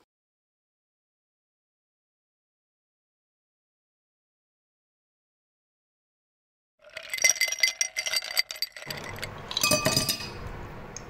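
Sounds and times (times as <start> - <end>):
ice cubes clinking in a glass: 6.8 - 10.4.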